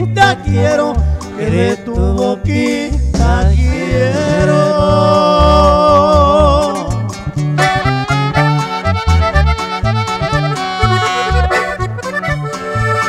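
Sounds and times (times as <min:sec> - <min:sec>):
accordion melody: 0:00.0 - 0:02.0, 0:02.6 - 0:05.8, 0:06.7 - 0:13.0
electric bass line: 0:00.0 - 0:13.0
guitar strumming: 0:00.0 - 0:13.0.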